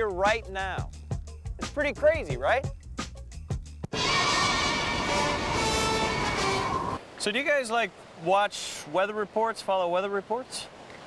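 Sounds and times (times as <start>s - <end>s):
held musical notes: 3.9s - 7.0s
stormy sea roaring: 3.9s - 7.0s.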